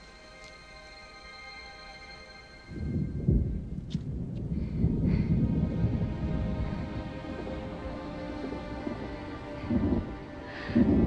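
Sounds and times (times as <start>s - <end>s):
deep rumble of thunder: 2.8s - 11.0s.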